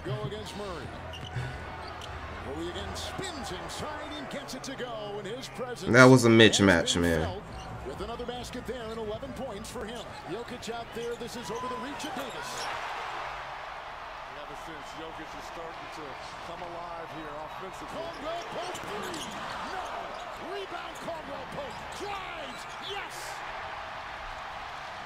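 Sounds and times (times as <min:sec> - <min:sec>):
sneakers squeaking: 0:00.0 - 0:02.3, 0:07.3 - 0:12.8, 0:17.4 - 0:23.5
arena crowd noise: 0:00.0 - 0:25.0.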